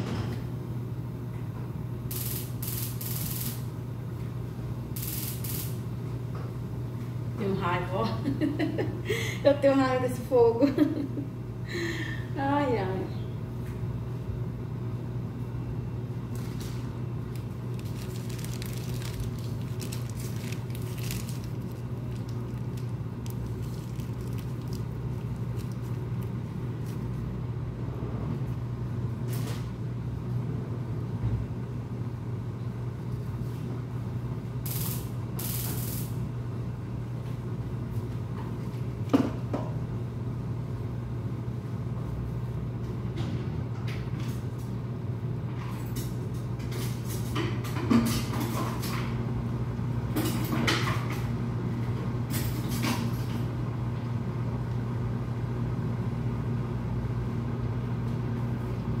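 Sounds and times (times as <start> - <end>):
low kitchen hum: 0.0 - 59.0.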